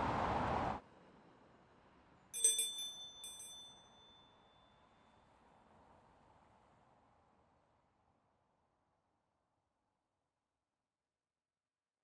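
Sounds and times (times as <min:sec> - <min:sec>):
small metal bell ringing: 0:02.4 - 0:04.9.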